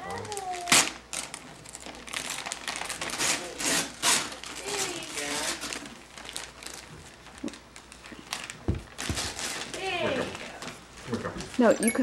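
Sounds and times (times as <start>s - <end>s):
paper rustling and tearing: 0.2s - 11.6s.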